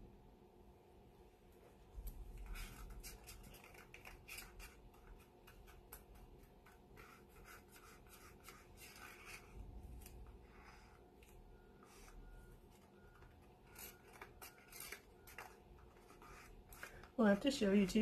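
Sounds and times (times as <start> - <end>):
stick scraping paint in plastic cups: 2.4 - 12.2, 12.8 - 18.0.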